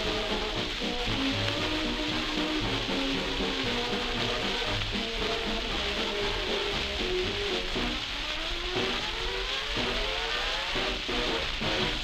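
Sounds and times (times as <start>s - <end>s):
record surface hiss and crackle: 0.0s - 12.0s.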